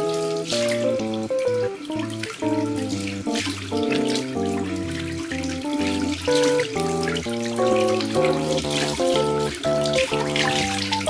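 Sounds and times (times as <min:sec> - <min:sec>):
instrumental music: 0:00.0 - 0:11.0
tap water running into sink: 0:00.0 - 0:11.0.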